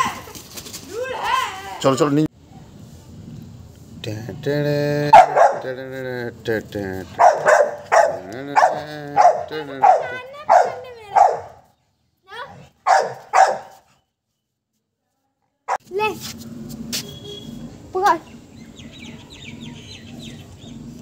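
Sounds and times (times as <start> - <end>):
dog barking loudly: 5.1 - 5.8, 7.1 - 11.6, 12.8 - 13.8.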